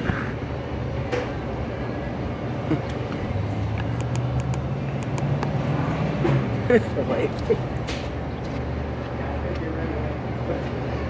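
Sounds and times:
low mechanical drone: 0.0 - 11.0
light sharp clicks: 3.8 - 5.6.

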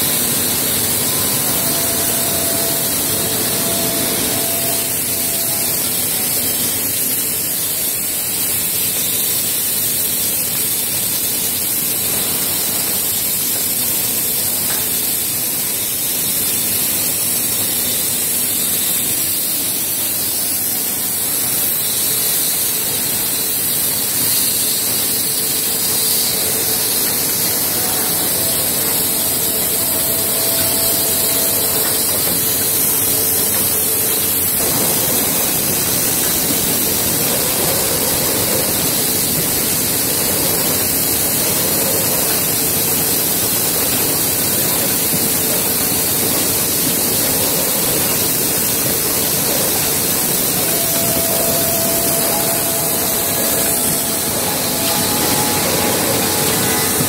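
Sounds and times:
machinery hissing: 0.0 - 57.0.

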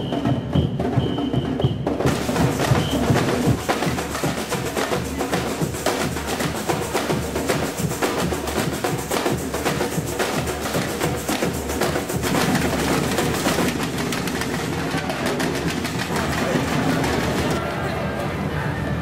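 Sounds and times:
percussion band playing drums: 0.0 - 17.6.

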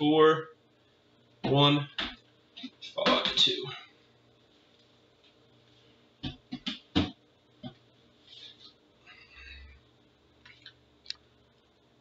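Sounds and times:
soft rustling: 4.4 - 6.0
sharp knocks: 6.2 - 7.8.

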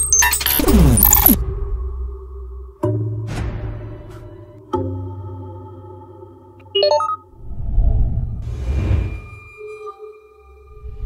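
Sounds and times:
low whoosh: 7.4 - 9.5.

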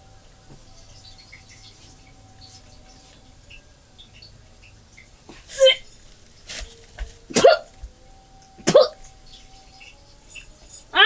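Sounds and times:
woman's hiccup-like vocal catch: 7.3 - 7.7, 8.6 - 9.0.

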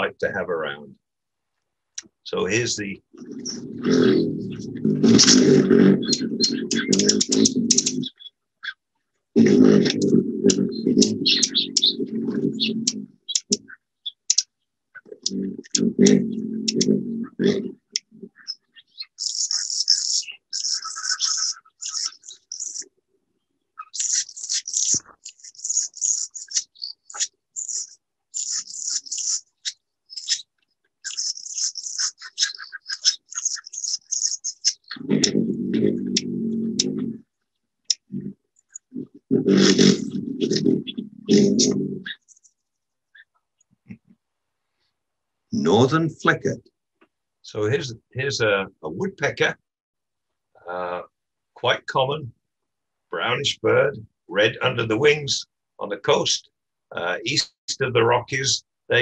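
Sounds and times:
hummingbird buzzy song notes: 3.2 - 8.3, 9.4 - 13.7, 18.4 - 22.8, 23.8 - 30.4, 31.0 - 36.9, 39.4 - 42.5.

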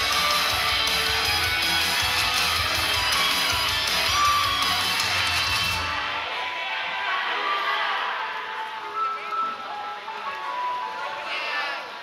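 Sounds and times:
pop song over sound system: 0.0 - 12.0.

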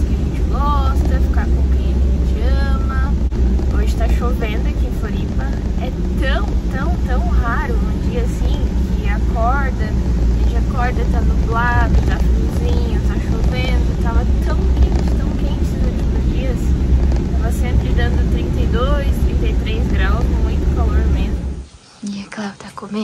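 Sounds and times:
woman talking: 0.0 - 16.8, 17.4 - 23.0
car interior rumble: 0.0 - 21.7.

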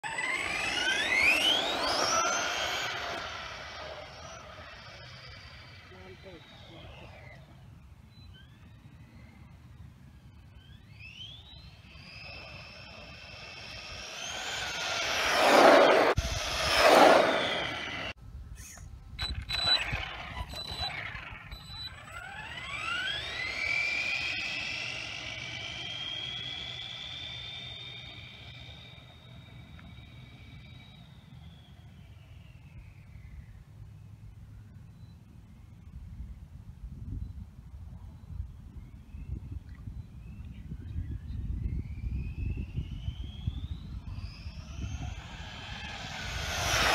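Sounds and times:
electric motor whining: 0.0 - 7.7, 10.4 - 31.8, 42.7 - 46.9
short blips and clicks: 13.6 - 25.0.

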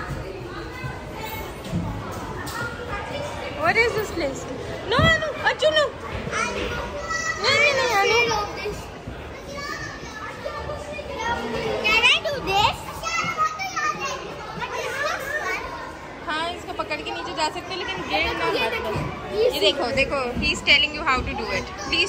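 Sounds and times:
young children talking and calling: 0.0 - 22.0.

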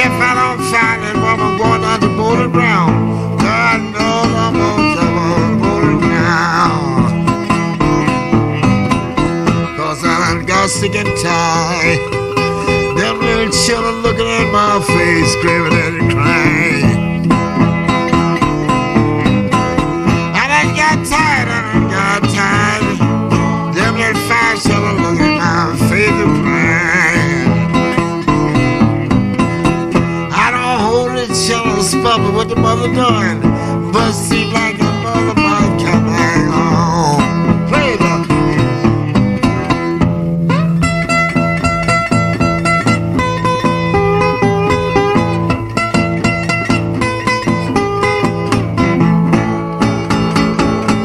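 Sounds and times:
slide guitar on resonator guitar: 0.0 - 51.0
thumbed bass notes: 0.0 - 51.0.

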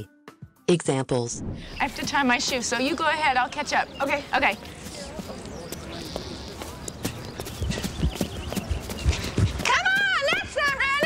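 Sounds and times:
running footsteps on pavement: 1.8 - 11.0.

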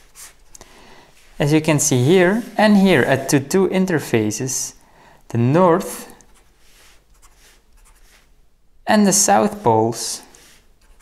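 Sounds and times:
marker scratching on paper: 0.0 - 0.5, 6.3 - 8.3, 9.5 - 11.0.

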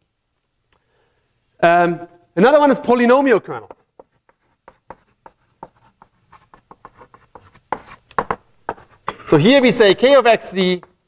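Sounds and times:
chalk writing on blackboard: 3.7 - 9.1.

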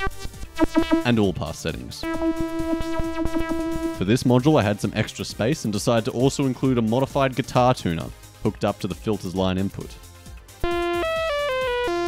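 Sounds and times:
bright buzzy synthesizer notes: 0.0 - 1.4, 2.0 - 4.3, 10.6 - 12.0.

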